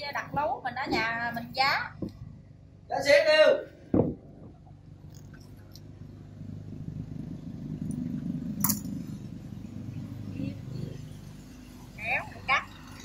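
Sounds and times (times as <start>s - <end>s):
low engine drone: 4.2s - 13.0s.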